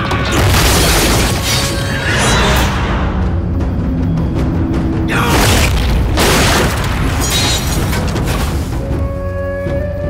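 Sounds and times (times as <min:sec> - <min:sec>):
orchestral music with low drums: 0:02.5 - 0:10.0.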